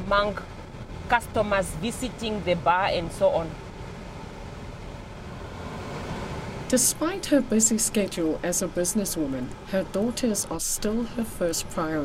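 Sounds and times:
car interior road and engine noise: 0:00.0 - 0:12.0.

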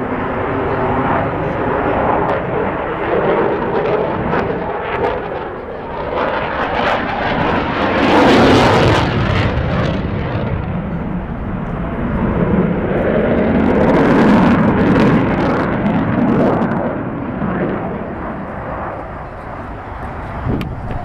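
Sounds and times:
jet engine roar overhead: 0:00.0 - 0:21.0.

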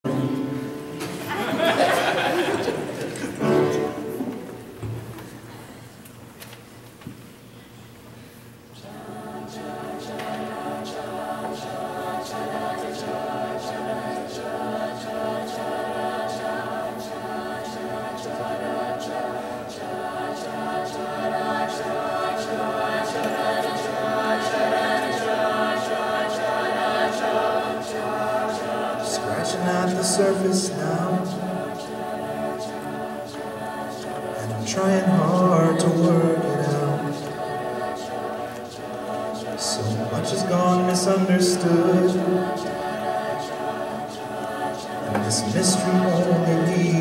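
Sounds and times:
a cappella group singing chord: 0:00.0 - 0:04.7, 0:08.7 - 0:47.0
crisp rhythmic clicks: 0:37.2 - 0:39.7.

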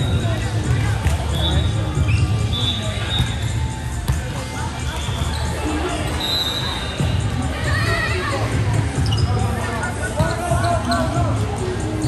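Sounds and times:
background music: 0:00.0 - 0:12.0
sneaker squeaks: 0:01.0 - 0:04.2, 0:04.8 - 0:07.3, 0:09.0 - 0:09.5, 0:10.2 - 0:11.2.

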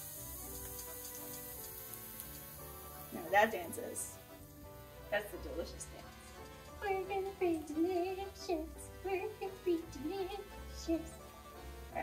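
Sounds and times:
garlic sizzling in frying pan: 0:00.0 - 0:12.0
soft music with held notes: 0:00.0 - 0:12.0.

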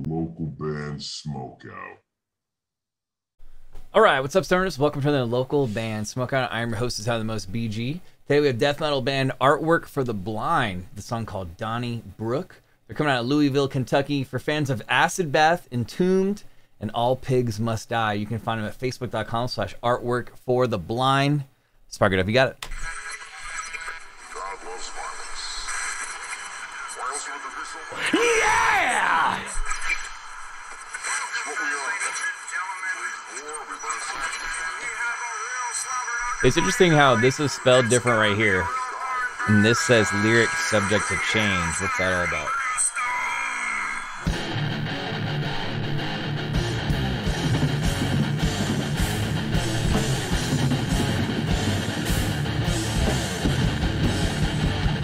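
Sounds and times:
indistinct voice: 0:00.0 - 0:02.0, 0:27.4 - 0:30.0, 0:31.2 - 0:44.4
distorted electric guitars: 0:35.8 - 0:55.0
drums: 0:44.2 - 0:55.0
quiet death metal music: 0:44.3 - 0:55.0.

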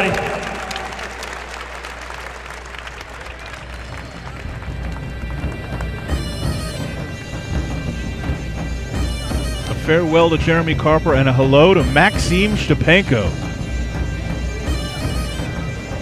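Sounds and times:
crowd applauding: 0:00.0 - 0:09.8
music with low beat: 0:03.8 - 0:16.0.

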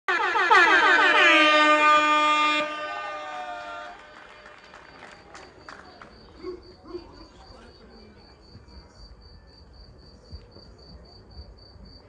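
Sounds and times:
air horn blast: 0:00.1 - 0:04.7.

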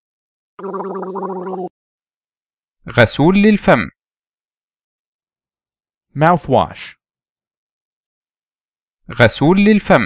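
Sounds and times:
person gargling: 0:00.6 - 0:01.7.

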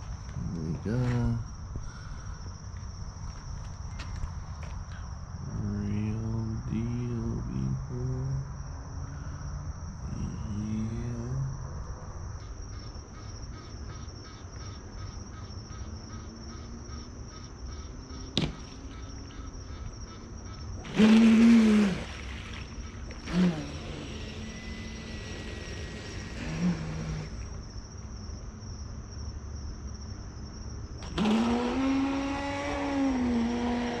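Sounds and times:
crickets trilling: 0:00.0 - 0:34.0
low muffled voice: 0:00.4 - 0:01.5, 0:05.5 - 0:08.5, 0:10.1 - 0:11.6
pulsing chirp: 0:12.4 - 0:27.6.

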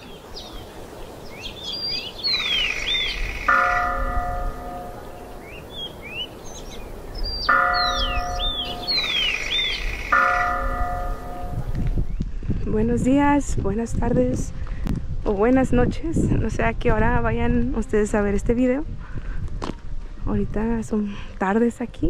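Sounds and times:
birds chirping and trilling: 0:00.0 - 0:12.3
bell-like chimes: 0:07.5 - 0:09.2.

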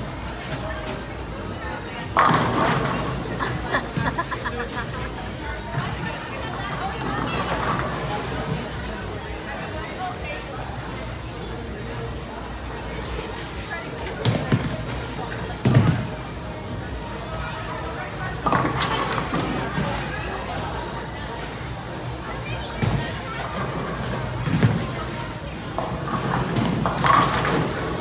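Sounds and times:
people chattering: 0:00.0 - 0:28.0
voices in bowling alley: 0:00.0 - 0:28.0.

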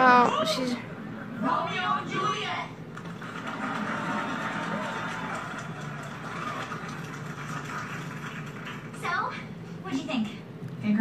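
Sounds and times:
faint television voices: 0:00.0 - 0:11.0.

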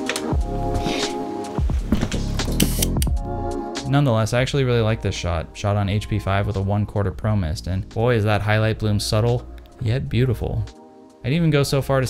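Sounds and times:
background music sustained tones: 0:00.0 - 0:12.0.

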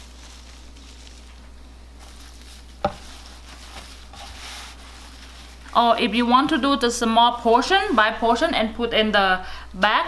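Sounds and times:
paper towel and herbs rustling: 0:00.0 - 0:06.8
steady low hum: 0:00.0 - 0:10.0.

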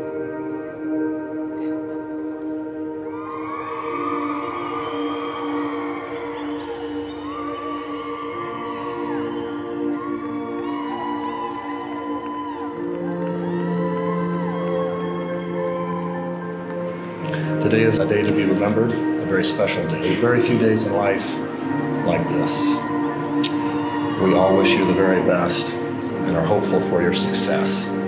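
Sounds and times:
soft background music: 0:00.0 - 0:28.0
crowd cheering and whooping: 0:03.0 - 0:17.0, 0:21.4 - 0:26.1.

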